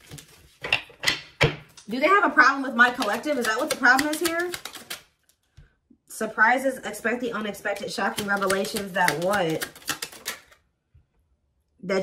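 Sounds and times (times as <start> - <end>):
woman speaking: 1.8 - 4.6, 6.1 - 9.7, 11.8 - 12.0.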